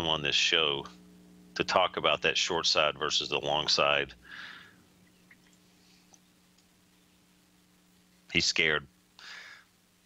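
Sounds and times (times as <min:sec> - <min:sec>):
faint steady hum: 0:00.0 - 0:10.0
tiny ticks: 0:05.0 - 0:06.7.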